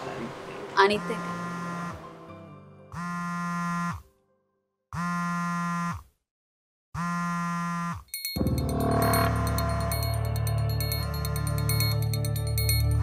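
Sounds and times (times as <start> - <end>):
electronic buzz sliding down: 0.9 - 2.1, 3.0 - 4.0, 5.0 - 6.0
loud electronic music: 8.4 - 13.0.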